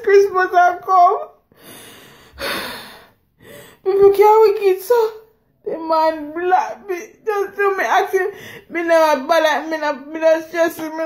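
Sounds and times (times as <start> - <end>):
woman gasping breath: 1.5 - 3.8.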